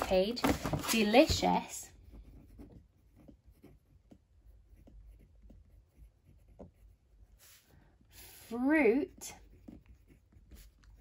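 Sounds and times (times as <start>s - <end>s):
pen scratching on paper: 1.9s - 11.0s.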